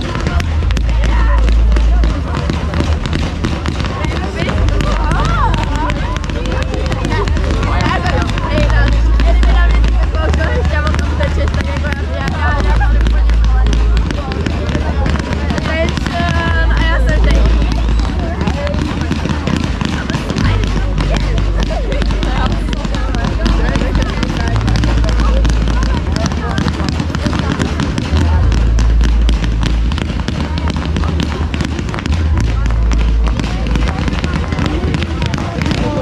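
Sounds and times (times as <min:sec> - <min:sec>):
crowd voices: 0:00.0 - 0:36.0
fireworks crackling and popping: 0:00.0 - 0:36.0
low rumble: 0:00.0 - 0:36.0.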